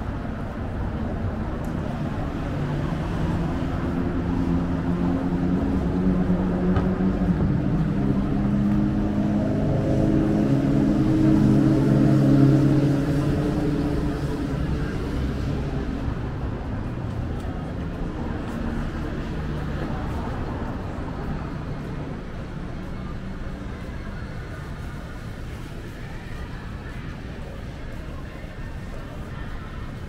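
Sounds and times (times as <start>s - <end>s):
road traffic: 0.0s - 30.0s
vehicle engine hum: 0.0s - 30.0s.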